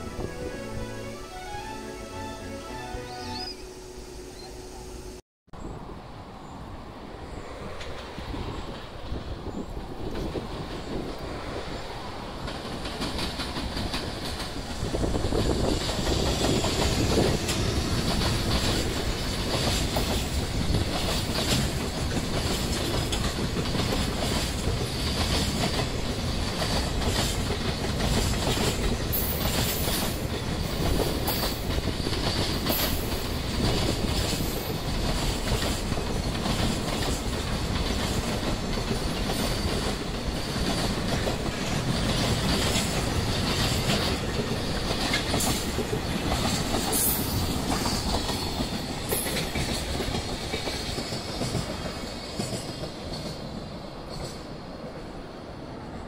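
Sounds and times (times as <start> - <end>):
freight train wheels clicking: 7.7 - 54.9.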